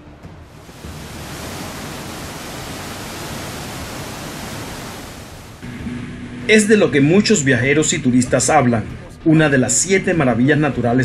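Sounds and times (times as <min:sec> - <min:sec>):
waterfall rushing: 0:00.5 - 0:05.7.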